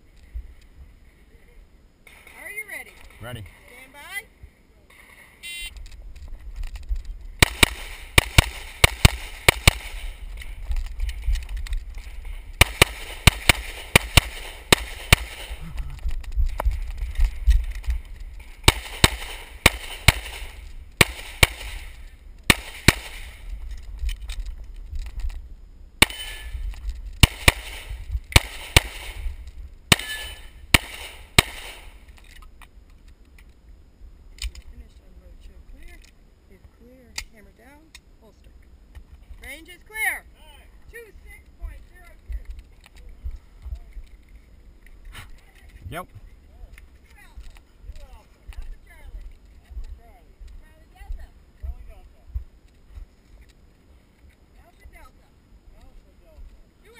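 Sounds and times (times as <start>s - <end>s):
low rumble of wind: 0.0s - 56.9s
rapid pistol fire: 7.4s - 10.2s, 12.6s - 15.7s, 18.6s - 23.5s, 26.0s - 26.6s, 27.2s - 32.0s.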